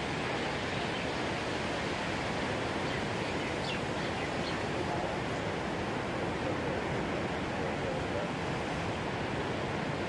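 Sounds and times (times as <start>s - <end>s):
heavy ocean surf: 0.0s - 10.0s.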